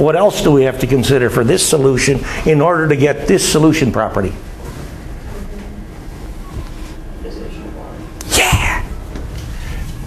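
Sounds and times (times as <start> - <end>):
man sneezing: 8.2 - 9.0.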